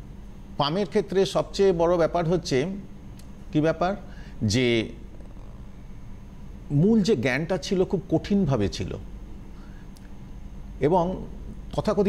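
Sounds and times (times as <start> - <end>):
low steady room hum: 0.0 - 12.0
man talking: 3.5 - 5.0, 6.7 - 9.0, 10.8 - 12.0.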